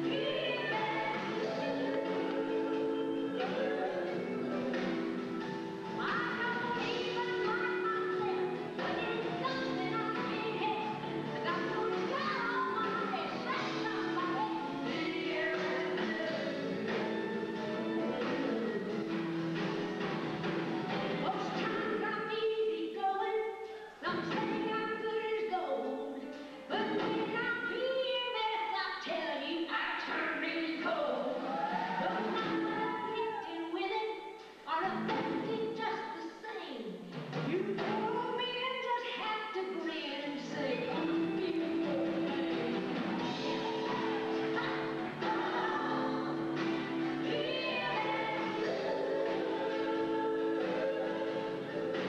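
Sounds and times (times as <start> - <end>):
woman singing: 0.0 - 5.2, 5.8 - 19.2, 21.1 - 52.0.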